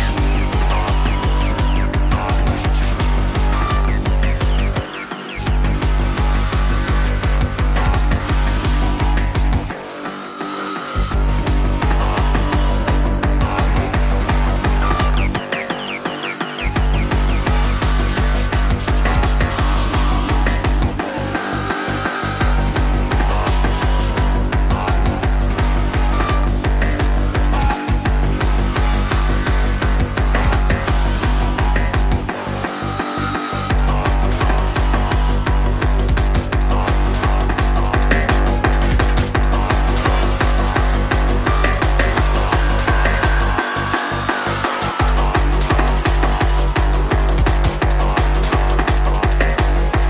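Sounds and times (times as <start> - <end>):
pounding kick drum: 0.0 - 9.8, 11.1 - 15.6, 16.7 - 21.2, 22.4 - 32.5, 33.7 - 50.0
high held synth tone: 0.0 - 35.7, 38.3 - 47.4
fast electronic dance music: 0.0 - 50.0.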